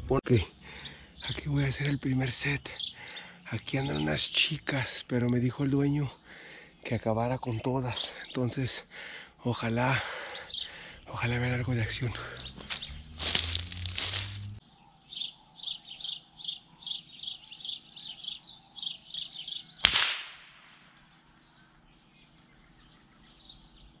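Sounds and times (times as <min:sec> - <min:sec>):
rifle shot: 0:19.8 - 0:20.8.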